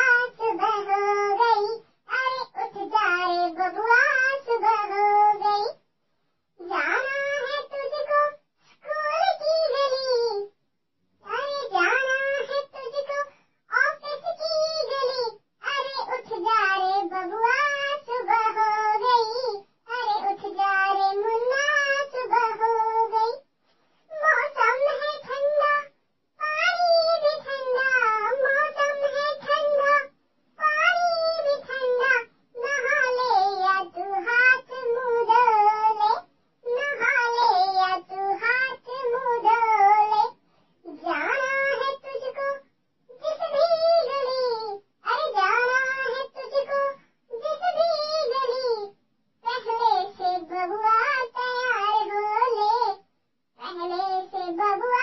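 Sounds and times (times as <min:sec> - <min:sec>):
high-pitched voice singing: 0:00.0 - 0:05.8, 0:06.6 - 0:10.5, 0:11.2 - 0:23.4, 0:24.1 - 0:53.0, 0:53.6 - 0:55.0.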